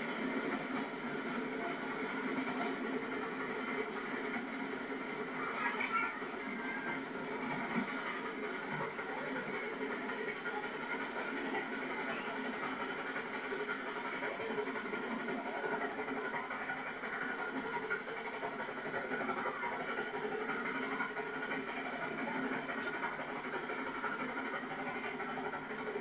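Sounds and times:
distant train rumble: 0.0 - 26.0.

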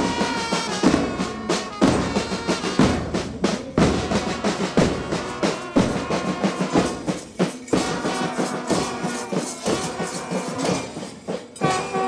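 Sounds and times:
bugles and trumpets playing: 0.0 - 12.0
march beat of drums and cymbals: 0.0 - 12.0.

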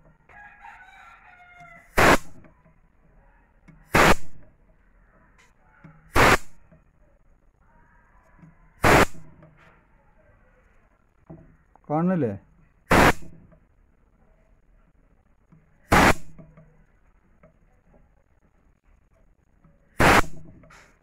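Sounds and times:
rooster crowing: 0.2 - 2.0
loud sharp bursts of noise: 1.9 - 2.4, 3.9 - 4.4, 6.1 - 6.6, 8.8 - 9.3, 12.9 - 13.5, 15.8 - 16.4, 19.9 - 20.7.

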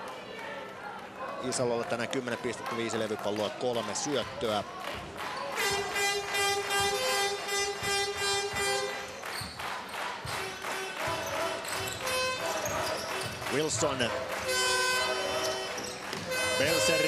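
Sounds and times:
held horn-like notes: 5.6 - 9.2, 10.3 - 17.0.

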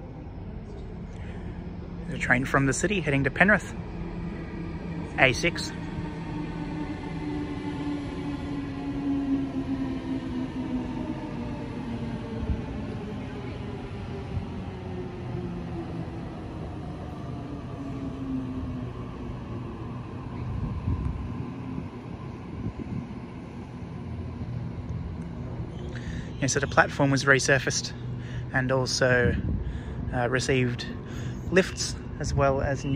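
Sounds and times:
wheels rumbling on rails: 0.0 - 32.9.

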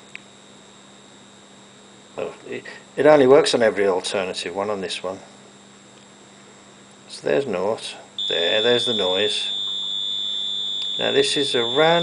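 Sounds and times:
faint electrical hum: 0.0 - 12.0
short high-pitched beep: 8.2 - 12.0
thin high whine: 8.2 - 12.0.

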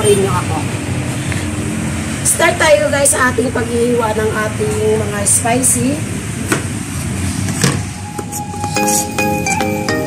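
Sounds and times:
marimba background music: 8.0 - 10.0.

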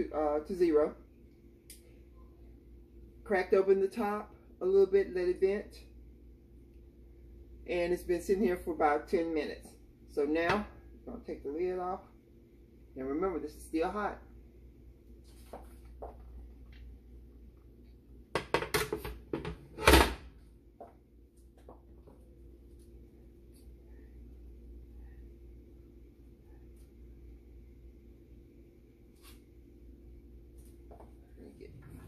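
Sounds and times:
faint steady hum: 0.0 - 32.0.

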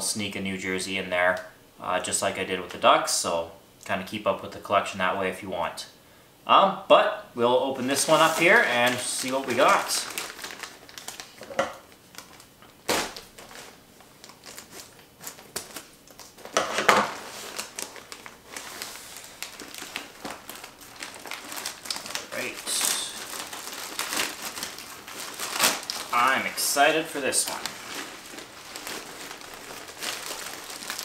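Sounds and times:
package rustling and crinkling: 7.8 - 31.0.

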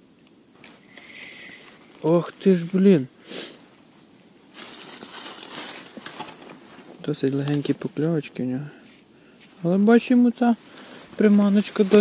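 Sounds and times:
gloved hands rustling tackle: 10.8 - 12.0.

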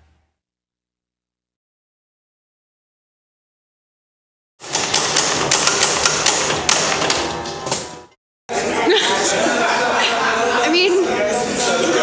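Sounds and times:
dense clatter of clicks and knocks: 4.6 - 7.2.

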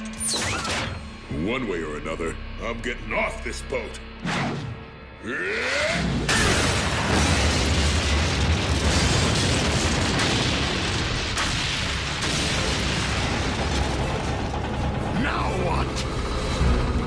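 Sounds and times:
sharp blasts: 6.2 - 15.1
heavy explosion rumble: 6.2 - 17.0.

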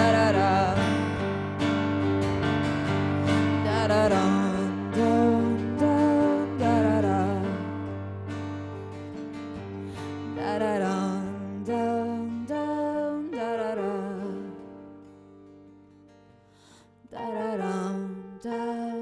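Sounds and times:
woman singing with vibrato: 0.0 - 1.5, 3.2 - 8.0, 10.2 - 14.7, 17.1 - 19.0
guitar: 0.0 - 19.0.

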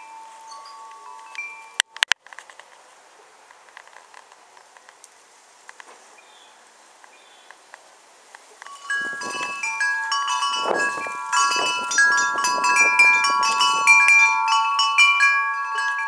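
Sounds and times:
wind chimes ringing: 0.0 - 1.8, 8.6 - 16.0
wind gusts: 0.0 - 16.0.

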